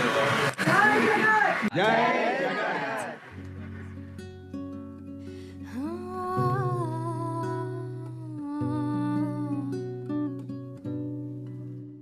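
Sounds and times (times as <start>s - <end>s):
plucked acoustic guitar: 3.3s - 12.0s.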